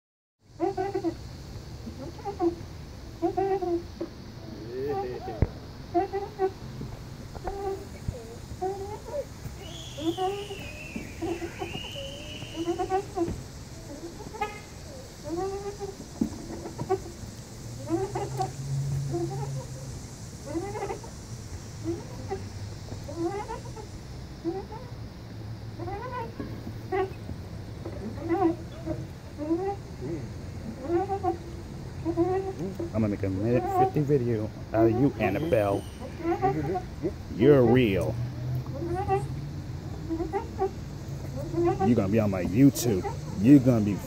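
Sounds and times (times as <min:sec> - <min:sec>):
steady low hum: 0:00.4 - 0:44.0
swing chains squeaking: 0:04.5 - 0:06.6, 0:07.3 - 0:21.2, 0:21.8 - 0:25.0, 0:25.8 - 0:31.4, 0:32.0 - 0:44.0.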